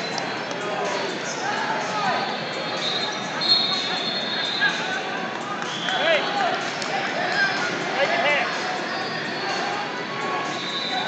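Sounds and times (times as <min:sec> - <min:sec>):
voices calling out in hall: 0:00.0 - 0:11.0.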